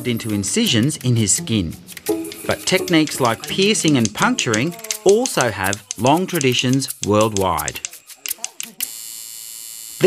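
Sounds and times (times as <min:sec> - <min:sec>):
tattoo machine buzzing: 0:08.2 - 0:10.0.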